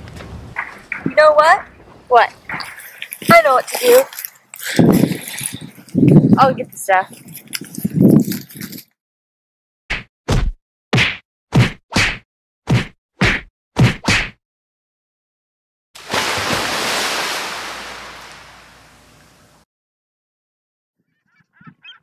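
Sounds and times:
hard whacks: 9.9 - 14.4.

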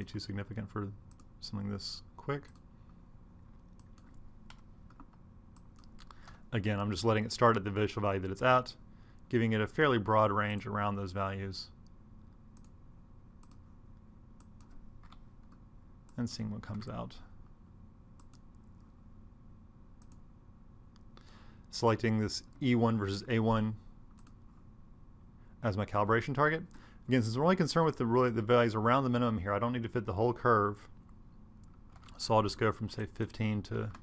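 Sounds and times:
low room hum: 0.0 - 34.0
faint computer keyboard keystrokes: 1.1 - 1.3, 2.4 - 2.7, 3.7 - 6.4, 12.6 - 12.8, 13.4 - 13.6, 14.4 - 17.0, 18.2 - 18.9, 20.0 - 20.2, 24.1 - 24.4.

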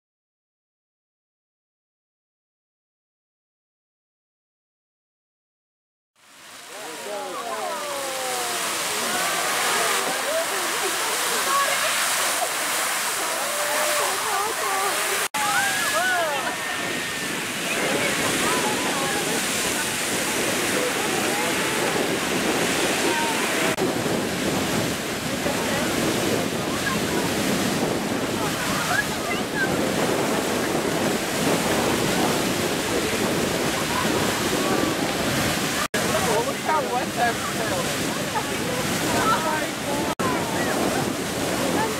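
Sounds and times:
geyser rushing roar: 6.5 - 41.9.

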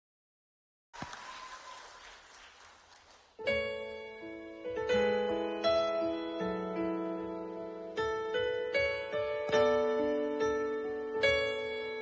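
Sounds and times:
piano playing slow notes: 3.4 - 12.0.

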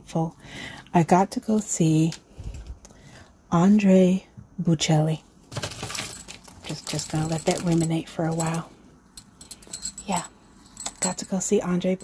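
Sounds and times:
metal bangles clinking: 5.6 - 12.0.

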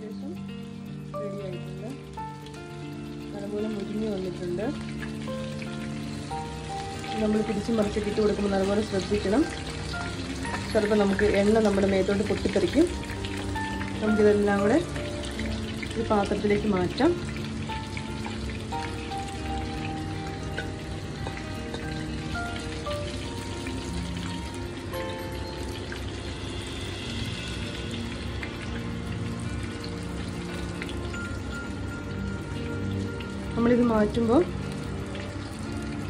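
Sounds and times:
background music: 0.0 - 36.0
fish sizzling in oil: 0.0 - 36.0.

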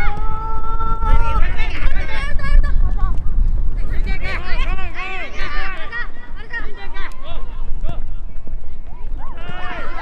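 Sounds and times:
children shouting: 8.9 - 10.0.

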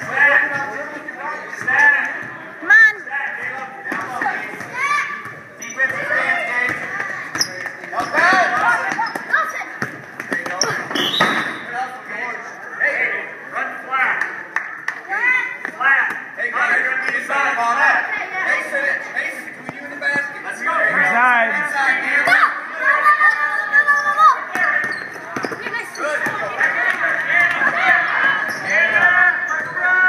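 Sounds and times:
sneakers squeaking: 3.4 - 11.8, 15.5 - 17.5, 19.3 - 20.7, 23.1 - 30.0.

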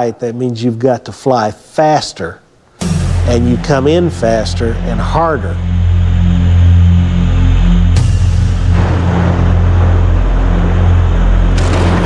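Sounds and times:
steady low hum: 1.0 - 12.0.

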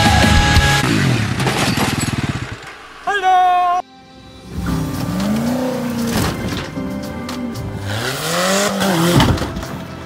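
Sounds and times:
atv engine running: 0.0 - 2.8.

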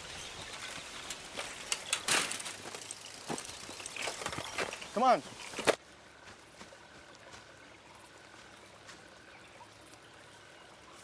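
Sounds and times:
bicycles rattling over grass: 0.0 - 5.8.

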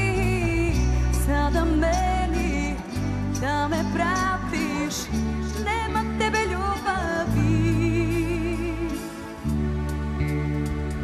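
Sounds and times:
woman singing: 0.0 - 9.5
pop band playing live: 0.0 - 11.0.

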